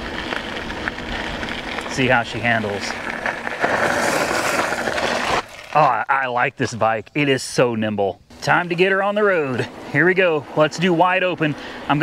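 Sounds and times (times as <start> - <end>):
bike tyres rolling on gravel: 0.0 - 12.0.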